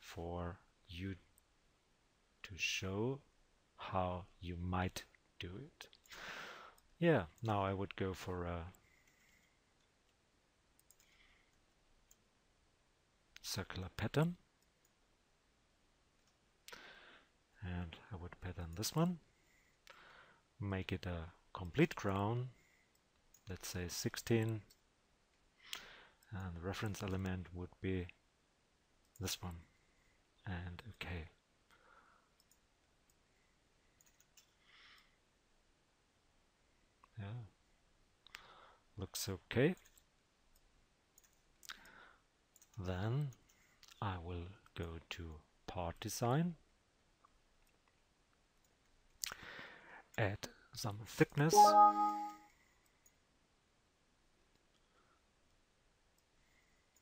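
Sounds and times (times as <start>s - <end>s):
computer mouse clicks: 10.8s - 11.2s
faint computer mouse clicks: 10.8s - 12.2s
short vocal sound: 51.5s - 52.4s.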